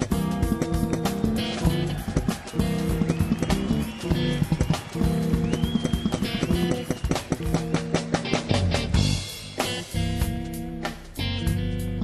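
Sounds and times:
busy drumming: 0:00.0 - 0:11.7
jazz fusion band playing: 0:00.0 - 0:12.0.

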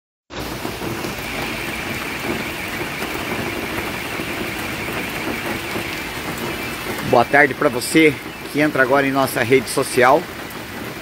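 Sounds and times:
steady rain falling: 0:00.3 - 0:11.0.

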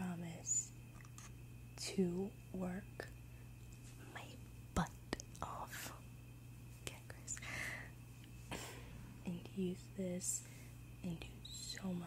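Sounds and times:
soft whispering: 0:04.0 - 0:06.1, 0:06.8 - 0:07.5.

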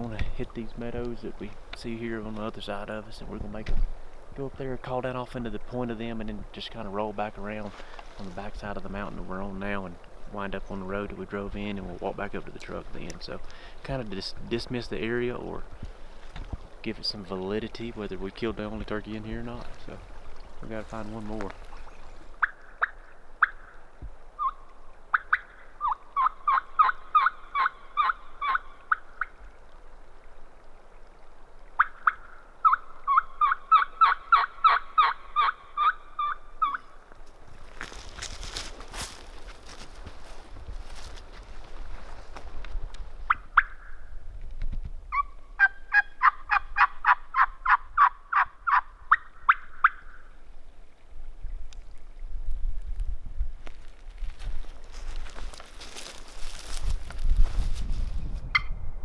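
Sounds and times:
turkey call hen calls: 0:22.4 - 0:23.8, 0:24.4 - 0:29.3, 0:31.8 - 0:37.0, 0:43.3 - 0:44.0, 0:45.1 - 0:50.2.

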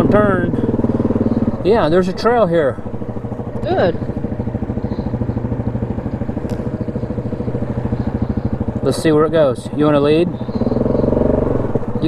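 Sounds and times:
atv engine idling: 0:00.0 - 0:12.0.

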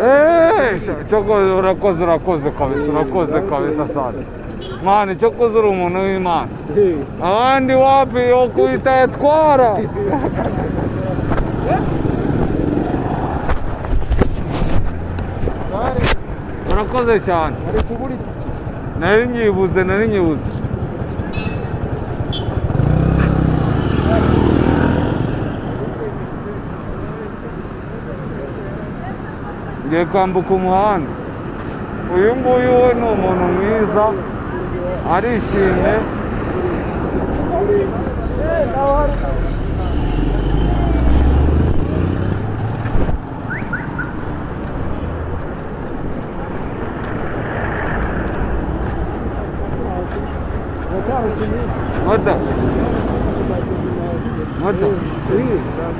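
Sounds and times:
street traffic noise: 0:00.0 - 0:55.9
vehicle engines passing: 0:00.0 - 0:55.9
vehicle engine passing by: 0:22.0 - 0:26.0, 0:32.2 - 0:44.5, 0:46.8 - 0:55.9.

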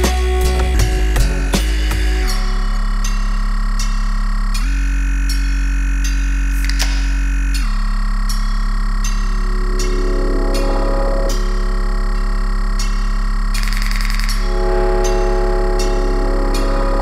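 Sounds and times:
deep steady bass: 0:00.0 - 0:17.0
synthesizer chords: 0:00.0 - 0:17.0.

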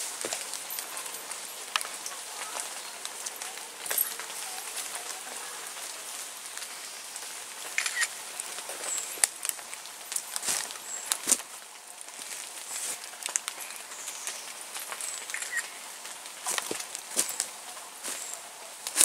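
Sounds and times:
footsteps crunching on leaves: 0:00.0 - 0:19.0
steady outdoor hiss: 0:00.0 - 0:19.0
twigs cracking: 0:00.0 - 0:19.0
bird chirps: 0:13.7 - 0:15.8.

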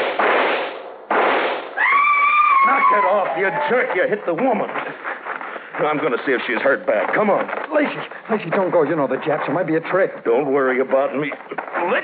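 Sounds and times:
rifle shots: 0:00.0 - 0:01.8
high cry: 0:01.8 - 0:03.9.

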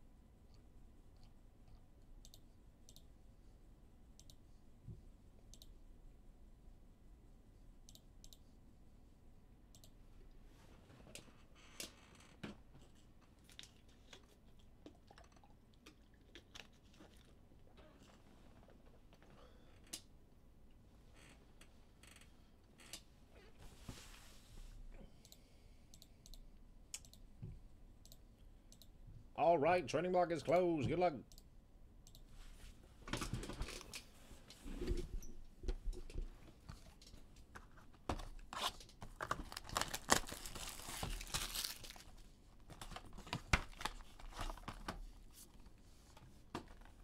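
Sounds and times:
soft rustles: 0:23.4 - 0:24.8.

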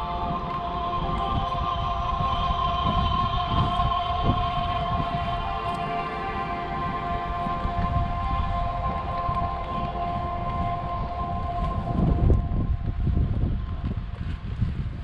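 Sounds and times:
steady held tones: 0:00.0 - 0:13.8
wind gusts on microphone: 0:00.0 - 0:15.0.

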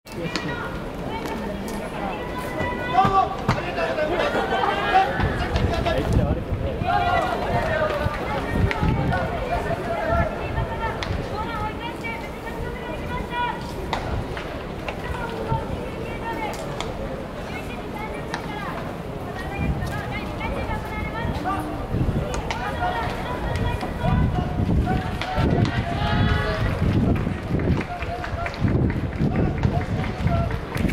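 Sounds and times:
people talking: 0:00.1 - 0:30.9
stadium ambience rumble: 0:00.1 - 0:30.9.

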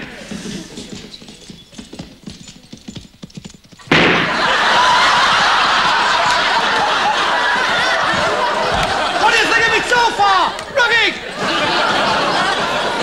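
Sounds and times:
galloping horse hoofbeats: 0:00.0 - 0:03.9, 0:04.8 - 0:09.0
audience laughter: 0:04.2 - 0:13.0.

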